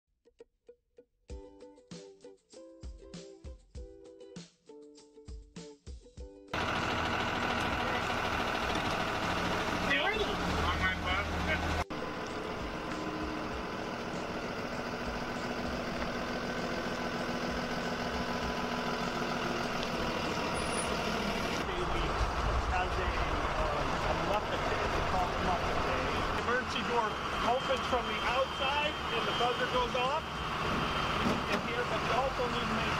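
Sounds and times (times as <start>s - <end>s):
bus engine low rumble: 6.6s - 29.3s
indistinct voices: 7.4s - 16.0s, 18.9s - 32.9s.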